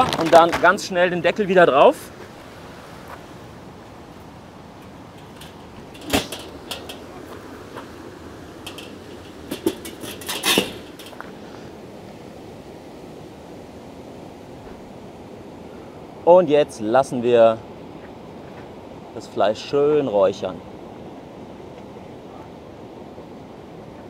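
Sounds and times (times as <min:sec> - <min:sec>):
sheet metal clanking: 0:04.8 - 0:11.3
light metal knocks: 0:04.8 - 0:11.4.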